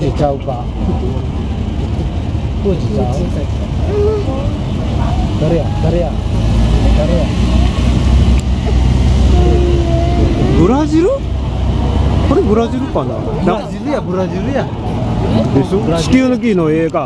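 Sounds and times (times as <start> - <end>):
motorcycles and cars driving past: 4.5 - 13.6.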